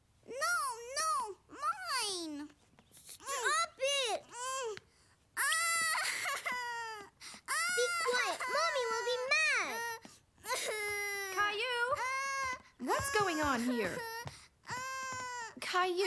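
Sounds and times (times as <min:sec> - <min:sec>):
young children crying and wailing: 0:03.2 - 0:15.8.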